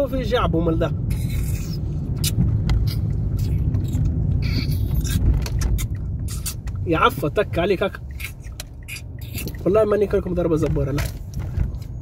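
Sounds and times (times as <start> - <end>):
engine and road rumble: 0.0 - 12.0
clicks and knocks in car: 10.4 - 11.9.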